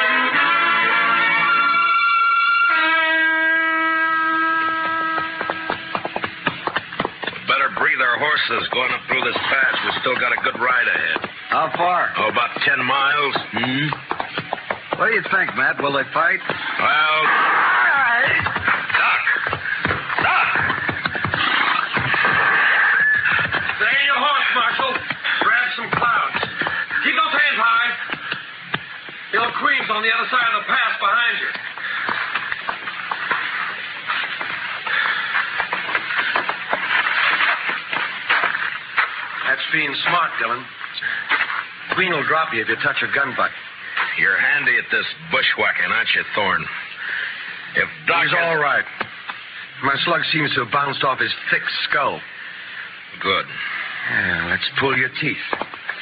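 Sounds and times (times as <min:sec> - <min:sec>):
music with held tone: 0:00.0 - 0:06.0
horse hoofbeats: 0:03.4 - 0:44.7, 0:55.4 - 0:56.0.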